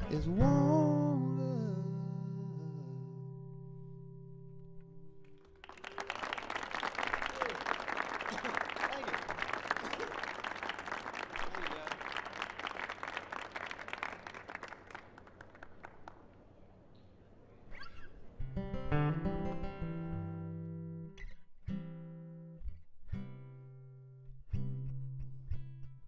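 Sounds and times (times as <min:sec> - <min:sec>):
audience applauding: 0:05.3 - 0:16.3.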